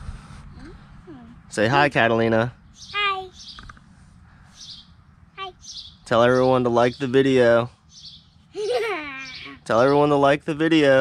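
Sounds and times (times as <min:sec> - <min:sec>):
birds chirping: 0:00.5 - 0:11.0.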